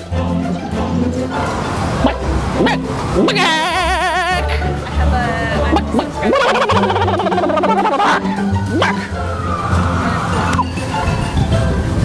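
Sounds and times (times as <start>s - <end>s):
background music: 0.0s - 12.0s
man imitating a chicken: 2.0s - 4.6s, 5.8s - 9.0s.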